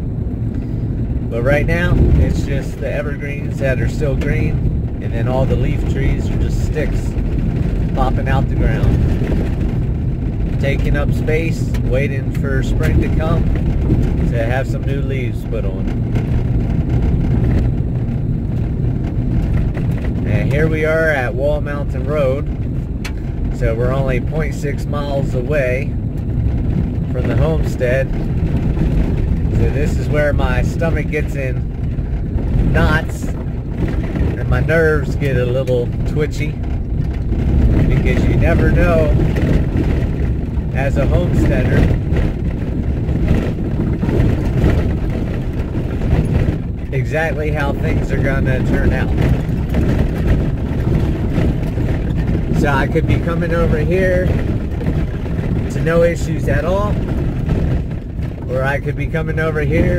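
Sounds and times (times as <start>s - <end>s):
vehicle on gravel road: 0.0s - 59.9s.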